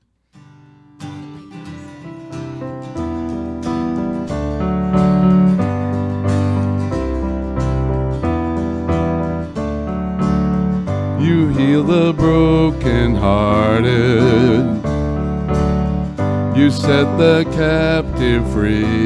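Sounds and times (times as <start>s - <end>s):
acoustic guitar strumming: 0.0s - 19.0s
deep low notes: 4.6s - 19.0s.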